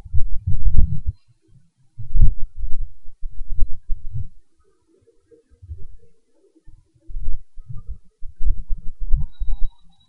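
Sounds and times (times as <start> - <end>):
low rumbling thuds: 0.0 - 1.2, 2.0 - 4.4.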